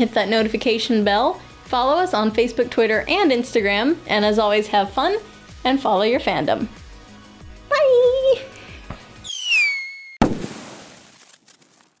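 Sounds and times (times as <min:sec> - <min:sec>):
falling whistle: 0:09.2 - 0:10.2
firework-like bang: 0:09.3 - 0:10.8.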